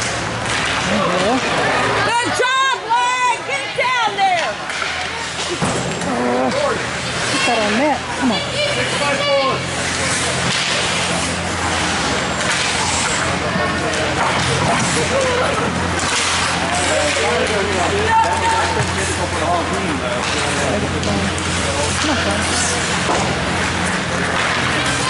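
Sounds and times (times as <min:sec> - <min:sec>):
hockey sticks and puck clacking: 0:00.0 - 0:25.0
spectators chattering: 0:00.0 - 0:25.0.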